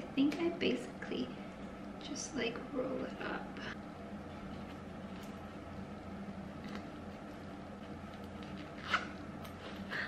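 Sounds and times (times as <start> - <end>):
low room hum: 0.0 - 10.0
zipper closing: 8.5 - 9.2.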